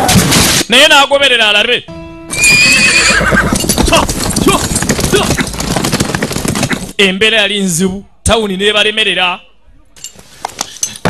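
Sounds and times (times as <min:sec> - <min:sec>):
horse whinny: 0:02.3 - 0:05.5
hooves galloping: 0:02.4 - 0:07.0.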